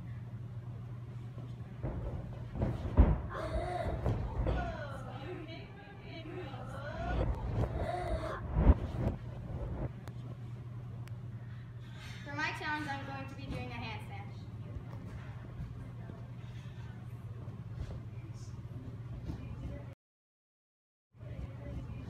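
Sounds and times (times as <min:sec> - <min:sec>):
steady low hum: 0:00.0 - 0:20.0, 0:21.2 - 0:22.0.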